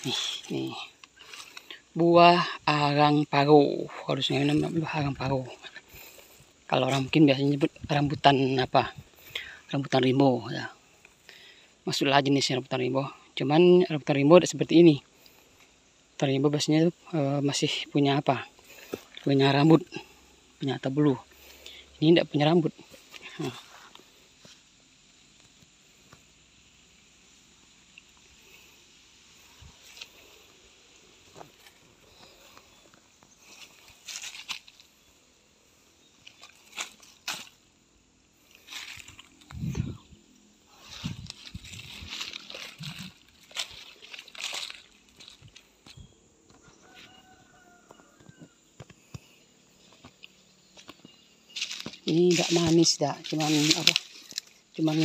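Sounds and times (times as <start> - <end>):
dry leaves rustling and crackling: 0.0 - 2.1, 4.0 - 9.4, 29.4 - 35.0, 36.2 - 37.6, 38.4 - 45.9, 50.8 - 55.0.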